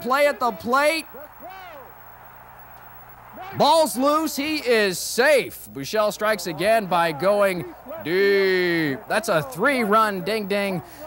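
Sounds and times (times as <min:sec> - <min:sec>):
tape hiss: 0:00.0 - 0:11.0.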